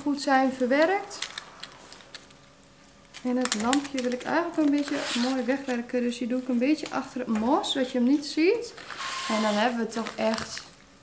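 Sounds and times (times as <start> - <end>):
dried leaves crackling: 0.5 - 6.9.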